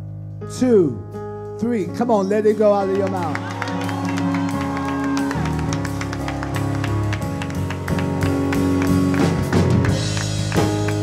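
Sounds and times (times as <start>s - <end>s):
keyboard chords: 0.0s - 11.0s
gospel band playing: 1.2s - 11.0s
congregation clapping along: 2.8s - 11.0s.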